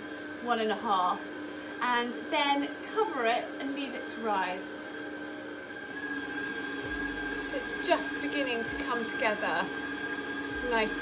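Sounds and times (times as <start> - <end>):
stand mixer kneading dough: 0.0 - 11.0.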